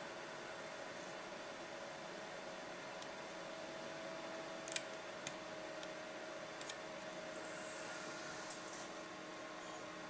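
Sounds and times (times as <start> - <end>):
computer hum: 0.0 - 10.0
computer mouse click: 4.6 - 5.9.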